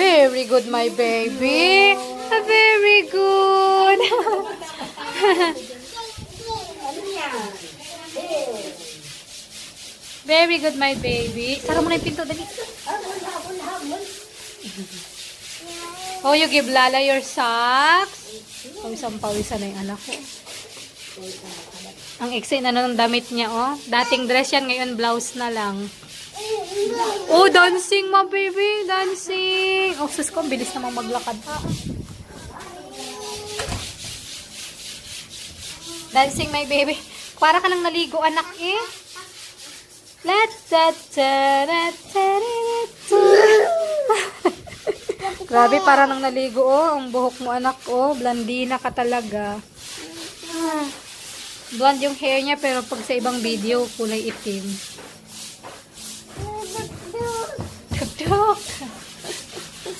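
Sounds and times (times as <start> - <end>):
stiff brush scrubbing cement: 0.0 - 59.9.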